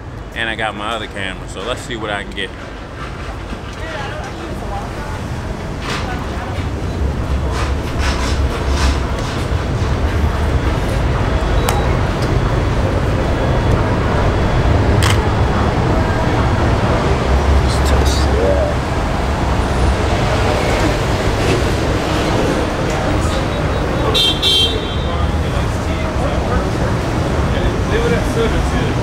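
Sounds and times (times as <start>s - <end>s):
low rumble of passing vehicles: 0.0s - 29.0s.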